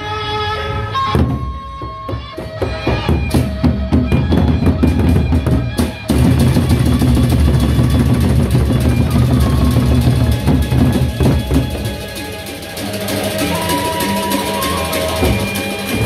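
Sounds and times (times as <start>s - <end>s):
barrel drums beaten with sticks: 1.2s - 12.4s
pitched metal percussion ringing: 2.6s - 16.0s.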